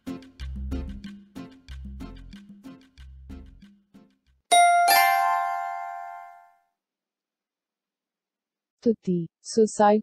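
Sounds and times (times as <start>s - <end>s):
electronic ding-dong chime: 4.5s - 6.4s.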